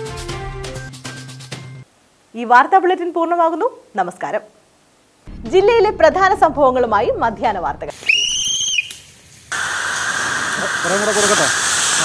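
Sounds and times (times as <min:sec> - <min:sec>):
steady loud hiss: 0:07.8 - 0:12.0.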